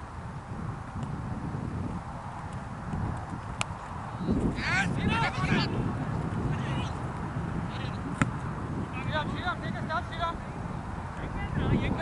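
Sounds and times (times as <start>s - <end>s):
wind rumbling on microphone: 0.0s - 12.0s
cricket bat hitting ball: 8.1s - 8.4s.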